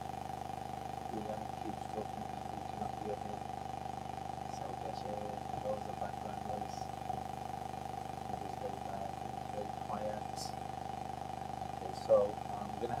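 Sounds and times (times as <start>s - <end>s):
electrical hum with hiss: 0.0s - 13.0s
faint speech fragments: 1.2s - 3.4s, 4.5s - 7.2s, 8.3s - 10.5s, 11.8s - 13.0s.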